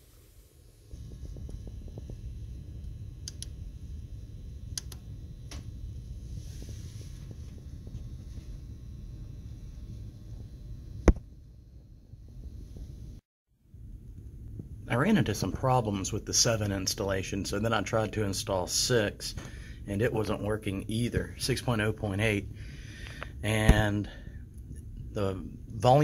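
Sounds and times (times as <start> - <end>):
low background rumble: 0.4 - 26.0.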